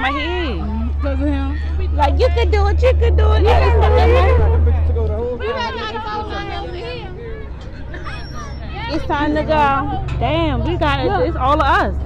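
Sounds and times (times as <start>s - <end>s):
low engine hum: 0.0s - 12.0s
people chattering: 0.0s - 12.0s.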